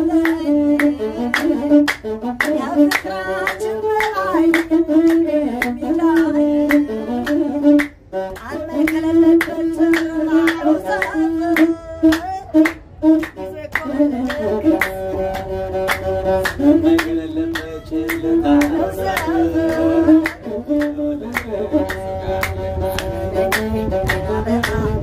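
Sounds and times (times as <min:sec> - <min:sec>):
hand-claps: 0:00.0 - 0:25.0
person singing: 0:08.4 - 0:12.7.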